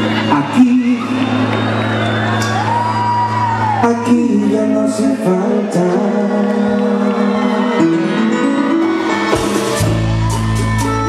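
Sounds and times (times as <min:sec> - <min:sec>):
live band music over loudspeakers: 0:00.0 - 0:11.0.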